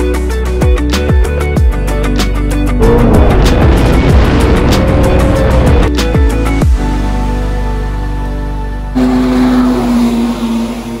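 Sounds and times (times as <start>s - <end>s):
engine running at high revs: 2.7s - 6.4s, 9.0s - 11.0s.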